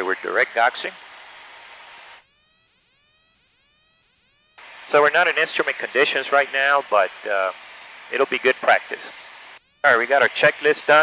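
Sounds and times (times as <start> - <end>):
intercom microphone hiss: 0.0 - 1.1, 4.6 - 11.0.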